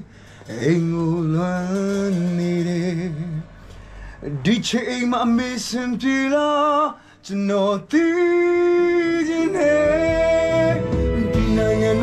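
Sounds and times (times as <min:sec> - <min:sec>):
man singing: 0:00.0 - 0:03.6, 0:04.2 - 0:12.0.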